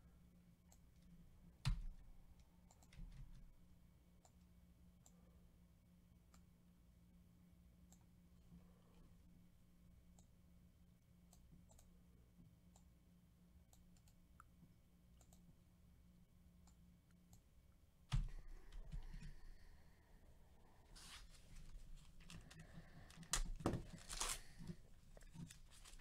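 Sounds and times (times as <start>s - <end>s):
faint low hum: 0.0s - 26.0s
keyboard and mouse clicks: 1.6s - 3.5s, 13.7s - 14.6s.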